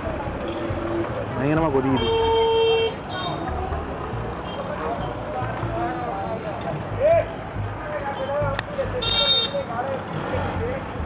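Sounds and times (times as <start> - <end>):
street traffic rumble: 0.0 - 11.0
vehicle horn honk: 9.0 - 9.6.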